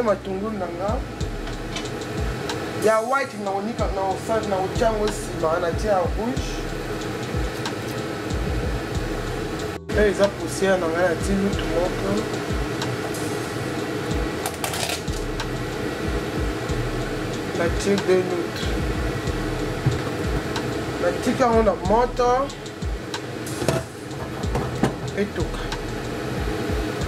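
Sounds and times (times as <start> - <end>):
mechanical whirring hum: 0.0 - 27.0
soft knocks: 19.8 - 20.6.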